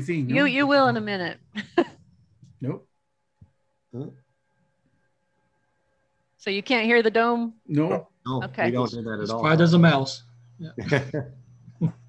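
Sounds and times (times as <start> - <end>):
faint steady tones: 0.0 - 12.0.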